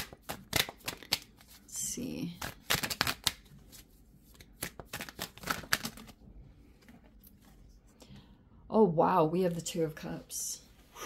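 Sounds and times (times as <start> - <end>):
cards being shuffled: 0.0 - 6.2.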